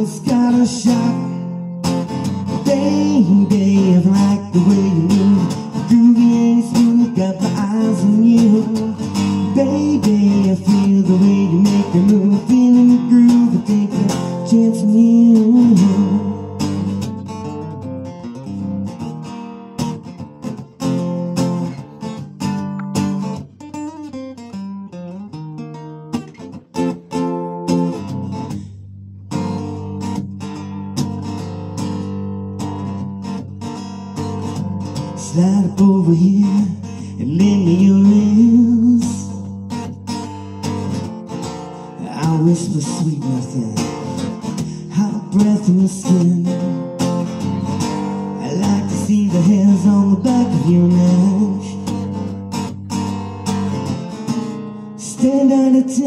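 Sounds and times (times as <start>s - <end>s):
acoustic guitar playing blues: 0.0s - 56.0s.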